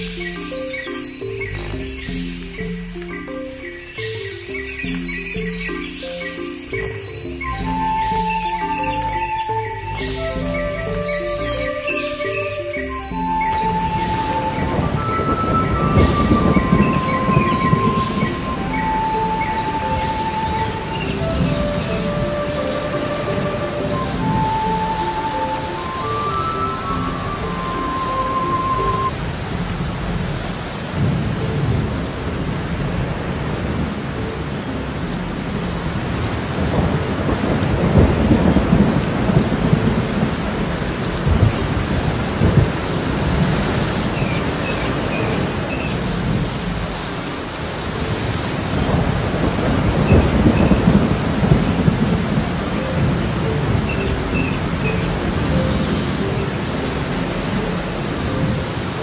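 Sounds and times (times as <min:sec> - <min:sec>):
wind buffeting microphone: 0:09.5 - 0:59.0.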